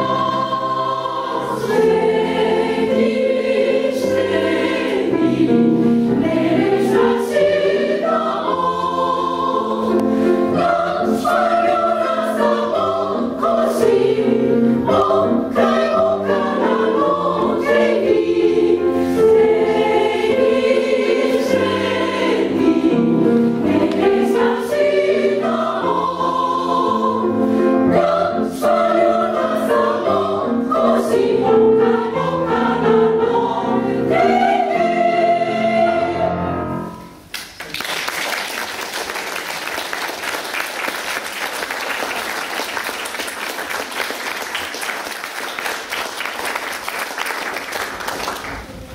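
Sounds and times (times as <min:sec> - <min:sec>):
women's choir singing: 0:00.0 - 0:37.0
piano accompaniment: 0:00.0 - 0:37.7.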